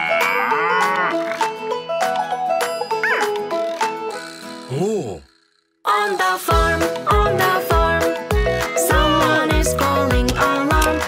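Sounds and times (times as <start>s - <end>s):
cartoon cow mooing: 0.0s - 1.4s, 4.7s - 5.3s
bright children's music: 0.0s - 5.0s, 5.9s - 11.0s.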